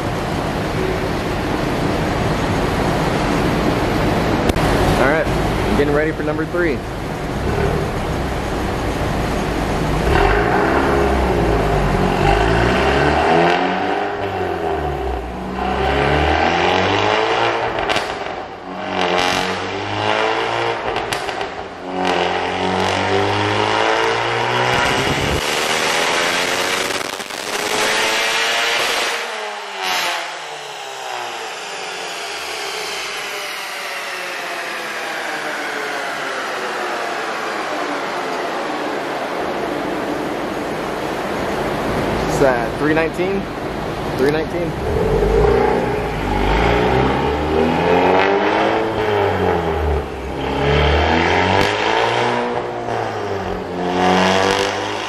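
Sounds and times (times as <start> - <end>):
car engine revving on a dyno: 0.0 - 55.0
falling whine of dyno rollers: 0.1 - 55.0.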